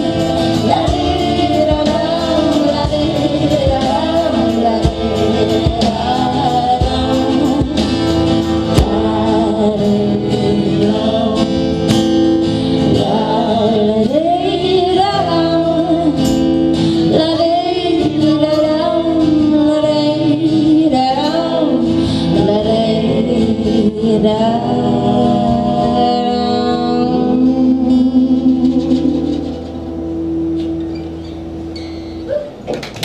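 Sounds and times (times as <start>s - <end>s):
men singing harmony: 0.0s - 15.7s
woman singing lead vocal: 0.0s - 30.0s
strummed acoustic guitars: 0.0s - 33.0s.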